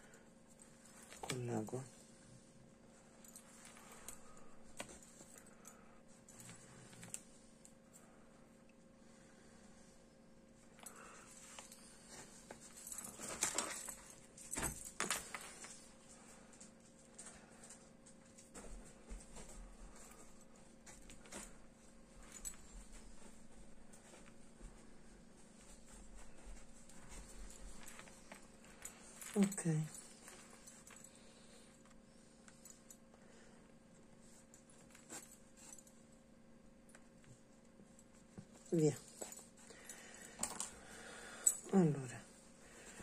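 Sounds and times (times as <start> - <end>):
soft rustling of crocheted piece: 0.0 - 7.8
faint steady hum: 0.0 - 43.0.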